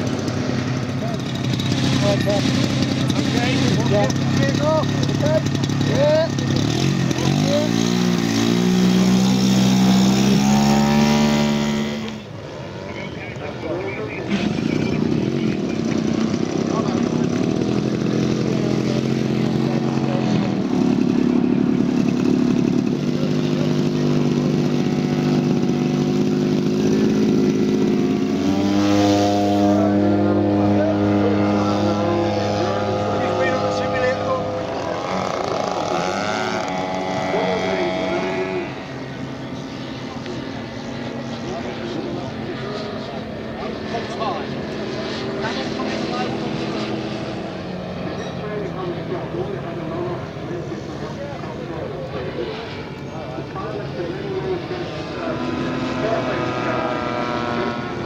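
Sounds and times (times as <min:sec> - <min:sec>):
faint model biplane engine: 0:00.0 - 0:58.0
model aircraft engine revving: 0:00.0 - 0:58.0.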